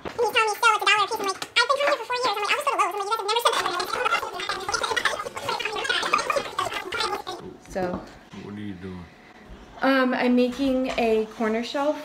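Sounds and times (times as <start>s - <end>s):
person making garbled vocal sounds: 0.0s - 7.5s.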